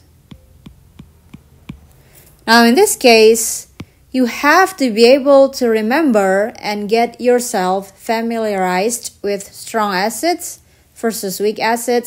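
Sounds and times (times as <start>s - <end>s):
stylus tapping on tablet screen: 0.0s - 2.4s, 3.4s - 4.0s
low steady hum: 0.0s - 12.0s.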